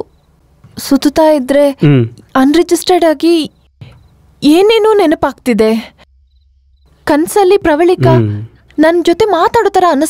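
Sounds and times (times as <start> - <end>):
faint low hum: 0.0 - 10.0
woman speaking: 0.8 - 3.6, 4.4 - 6.0, 7.0 - 10.0.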